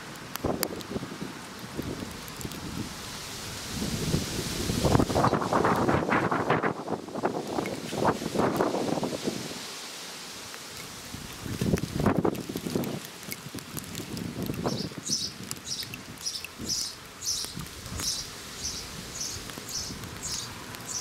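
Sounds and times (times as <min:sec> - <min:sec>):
gusty wind buffeting microphone: 0:00.4 - 0:09.6, 0:11.1 - 0:20.8.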